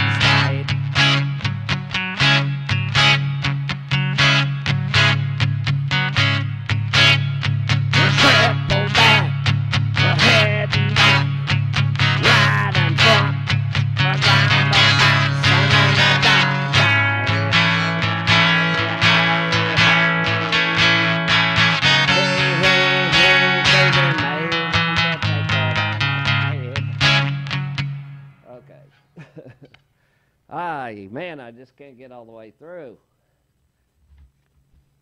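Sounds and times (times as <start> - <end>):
guitar strumming fast chords: 0.0 - 28.6
steady low bass: 0.0 - 28.7.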